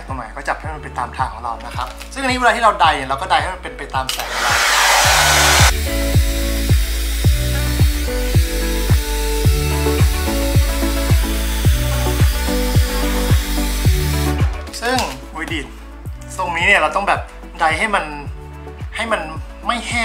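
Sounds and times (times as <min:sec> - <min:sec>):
background music with steady beat: 0:00.0 - 0:20.0
hair dryer blowing: 0:04.1 - 0:09.1, 0:09.9 - 0:14.4.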